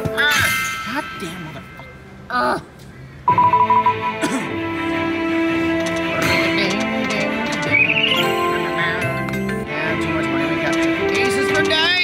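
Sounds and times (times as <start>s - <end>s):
slot machine music: 3.3s - 12.0s.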